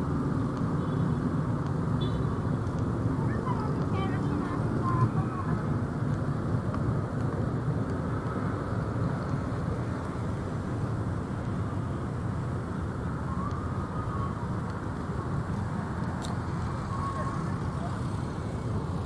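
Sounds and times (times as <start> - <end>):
road traffic rumble: 0.0 - 19.0
faint voices of passers-by: 2.3 - 19.0.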